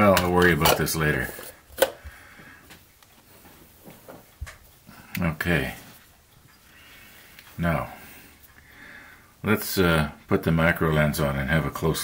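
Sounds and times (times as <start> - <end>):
faint handling sounds: 0.1 - 8.7.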